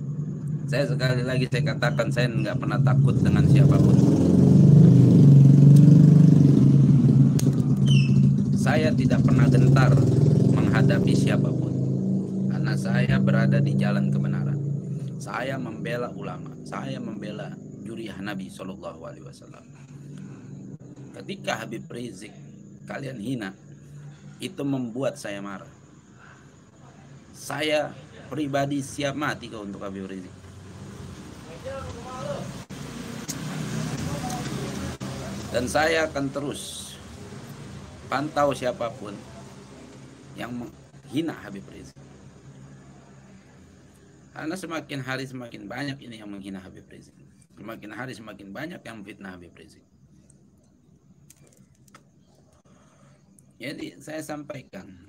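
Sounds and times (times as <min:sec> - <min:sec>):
vehicle engine rumbling: 0:00.0 - 0:18.7, 0:26.6 - 0:44.4.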